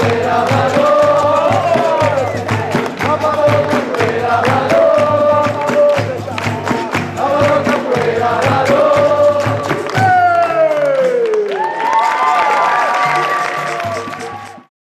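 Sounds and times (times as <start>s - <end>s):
group of voices singing: 0.0s - 10.8s
steady drum beat: 0.0s - 10.8s.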